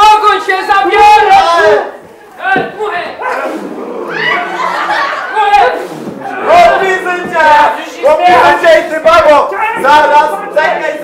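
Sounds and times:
men shouting: 0:02.9 - 0:11.0.

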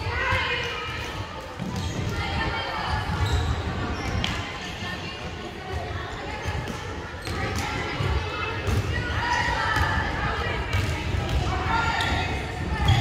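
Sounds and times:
players' voices: 0:00.0 - 0:13.0.

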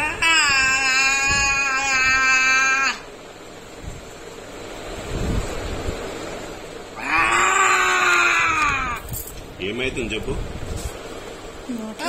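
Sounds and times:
boy wailing: 0:00.0 - 0:03.1, 0:07.0 - 0:09.2.

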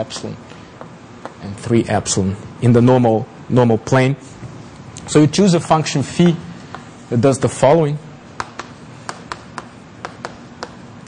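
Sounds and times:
chalk tapping on a blackboard: 0:00.1 - 0:01.4, 0:06.2 - 0:07.5, 0:08.4 - 0:10.9.

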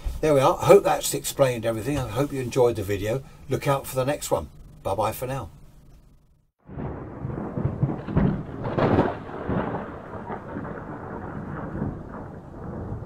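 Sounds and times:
rolling thunder: 0:06.6 - 0:13.0
rain: 0:06.7 - 0:13.0.

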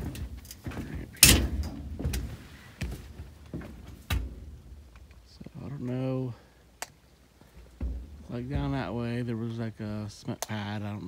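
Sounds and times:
footsteps on plank decking: 0:00.0 - 0:06.5, 0:07.1 - 0:09.4.

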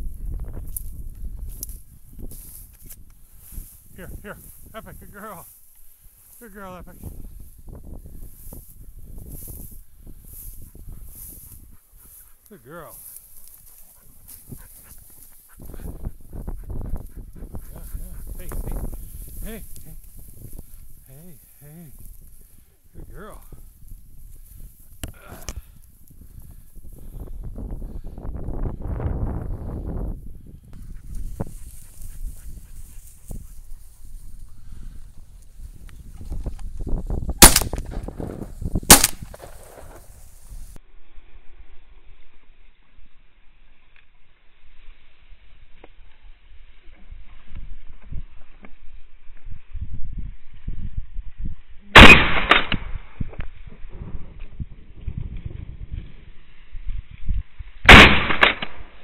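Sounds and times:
low wind noise: 0:00.0 - 0:59.0
soft dog sounds: 0:10.6 - 0:18.7
shotgun shots: 0:37.4 - 0:38.2, 0:38.9 - 0:40.0, 0:52.0 - 0:53.0, 0:57.9 - 0:59.0.

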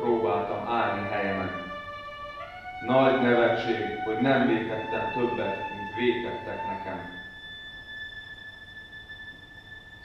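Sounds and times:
violin holding high note: 0:00.0 - 0:10.0.

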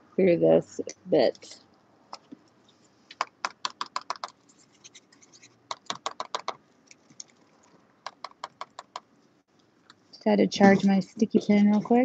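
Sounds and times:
glue pen clicking: 0:03.2 - 0:04.4, 0:05.7 - 0:06.6, 0:08.1 - 0:09.0.

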